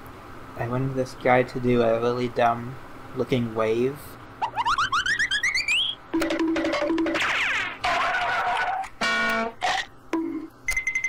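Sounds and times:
warbling rising chirps: 4.4 - 6.1.

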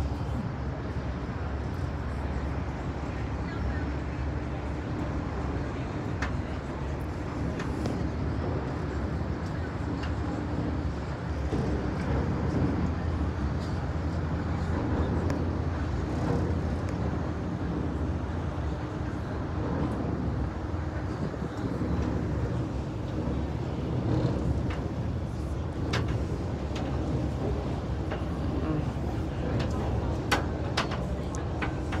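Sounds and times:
boat engine drone: 0.0 - 32.0
wind on microphone: 0.0 - 32.0.

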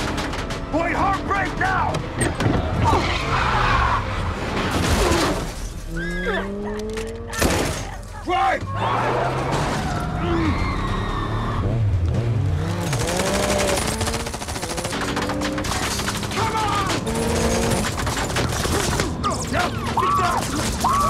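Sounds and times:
motorbike and car engines revving: 6.1 - 7.4, 10.8 - 20.5
automatic gunfire: 12.9 - 19.2.

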